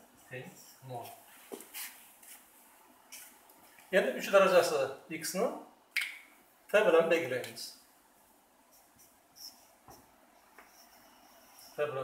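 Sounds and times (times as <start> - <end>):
marker squeaking on whiteboard: 8.7 - 11.8.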